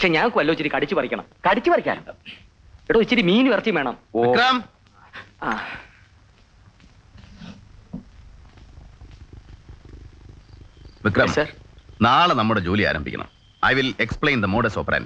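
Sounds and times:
low rough rumble: 6.2s - 13.4s
man speaking: 11.0s - 15.0s.

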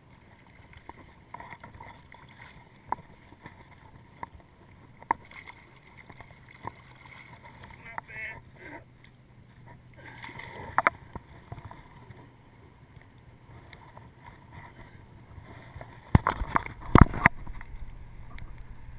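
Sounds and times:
water lapping against kayak hull: 0.0s - 18.9s.

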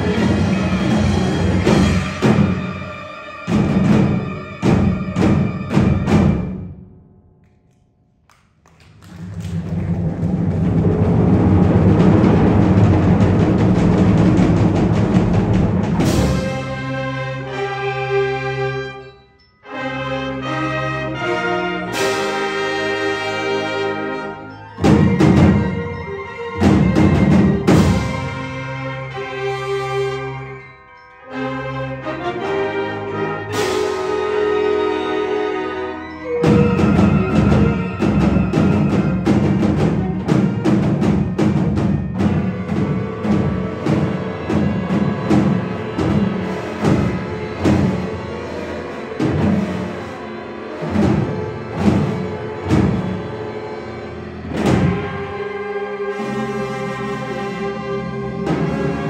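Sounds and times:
drums fast driving rhythm: 9.6s - 16.7s
concert band brass chords: 19.6s - 30.7s, 31.3s - 59.0s.

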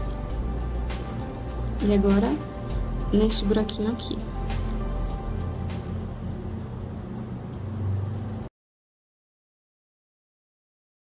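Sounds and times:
low steady hum: 0.0s - 8.5s.

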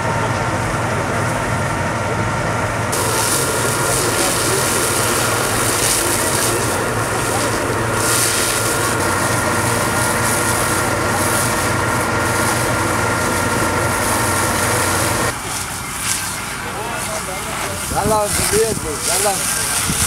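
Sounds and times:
engine running steadily: 0.0s - 20.0s
water jets hissing from hoses: 2.9s - 20.0s.

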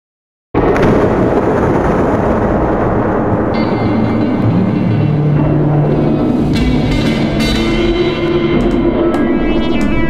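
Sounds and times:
thunder rumbling: 0.6s - 8.0s.

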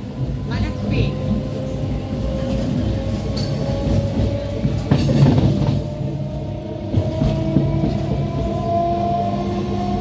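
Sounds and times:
train carriage rumble: 0.0s - 10.0s.

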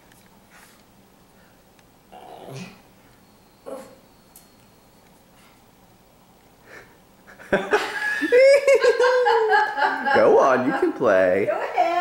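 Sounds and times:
woman laughing: 6.7s - 10.4s.

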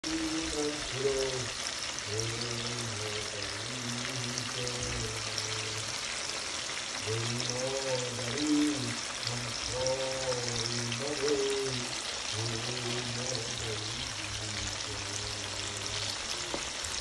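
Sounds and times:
music with voice singing: 0.0s - 6.1s, 7.0s - 17.0s
meat sizzling in oil: 0.0s - 17.0s.

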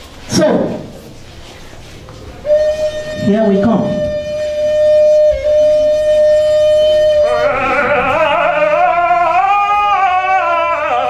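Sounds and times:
wooden flute playing: 1.8s - 11.0s.

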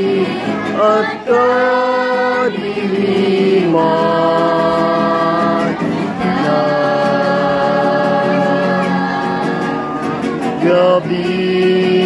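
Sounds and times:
group singing a hymn: 0.0s - 12.0s.

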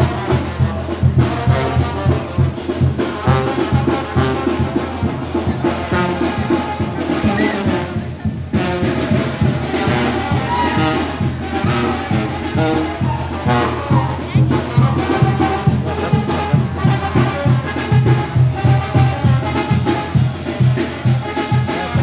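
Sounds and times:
brass band playing dance music: 0.0s - 22.0s.

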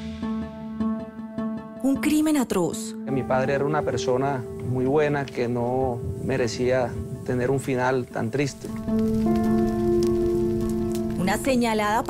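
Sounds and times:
crackling hiss: 3.2s - 12.0s.

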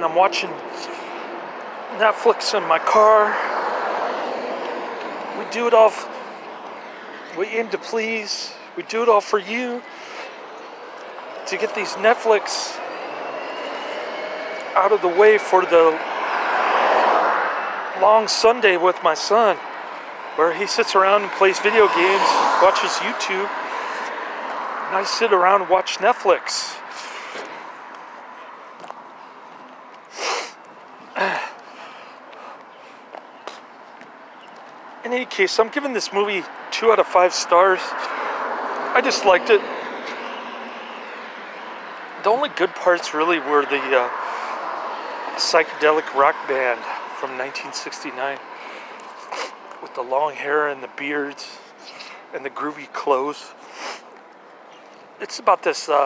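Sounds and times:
road vehicle passing: 0.0s - 56.0s.

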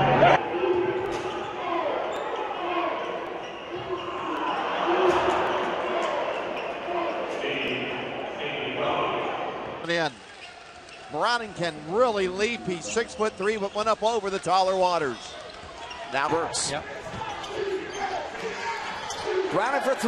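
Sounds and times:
crowd noise and voices: 0.0s - 20.0s.

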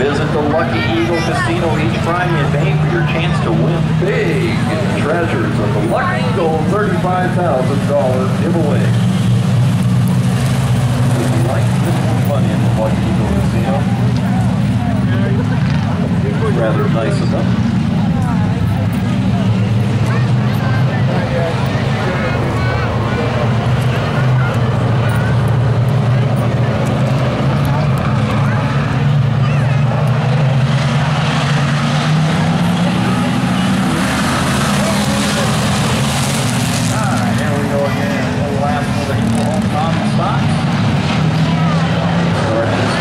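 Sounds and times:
race car engines droning: 0.0s - 43.0s.

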